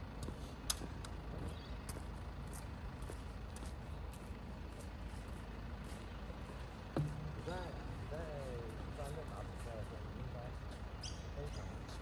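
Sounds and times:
distant traffic rumble: 0:00.0 - 0:12.0
distant pitched calls: 0:10.6 - 0:12.0.

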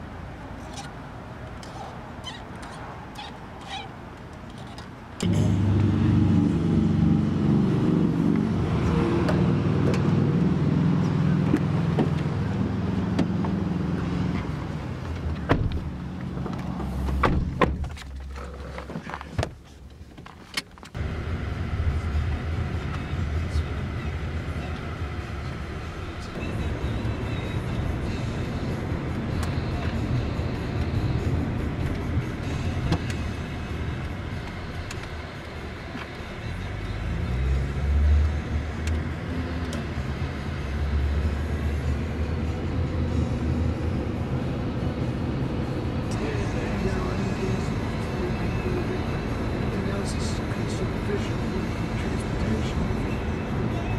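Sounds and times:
car engine and road rumble: 0:00.0 - 0:53.9.

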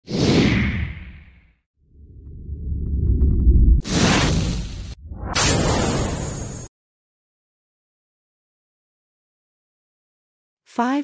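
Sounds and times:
low rumble: 0:01.9 - 0:06.6.

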